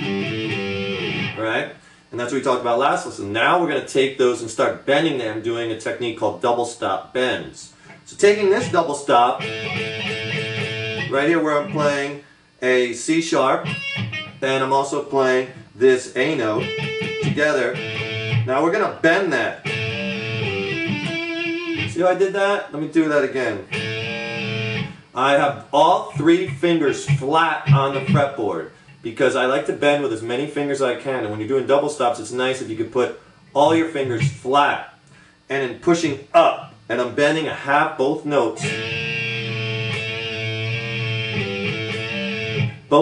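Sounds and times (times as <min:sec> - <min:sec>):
electric guitar bent double stop: 0:23.7 - 0:25.0, 0:38.6 - 0:42.8.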